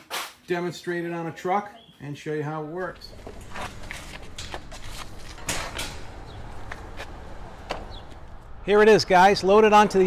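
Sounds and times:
mower wheels clanking on metal: 3.1s - 6.4s.

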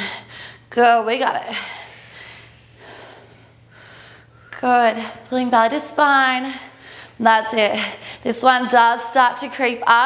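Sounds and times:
woman breathing: 0.0s - 0.8s, 1.4s - 5.3s, 6.4s - 8.3s
faint steady hum: 0.0s - 10.0s.

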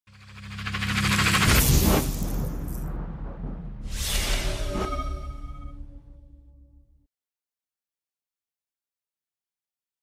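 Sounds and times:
logo intro swell: 0.1s - 6.8s.

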